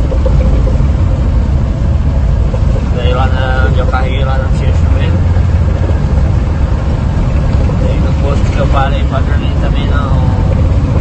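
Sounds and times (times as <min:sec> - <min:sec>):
road noise: 0:00.0 - 0:11.0
truck diesel engine rumble: 0:00.0 - 0:11.0.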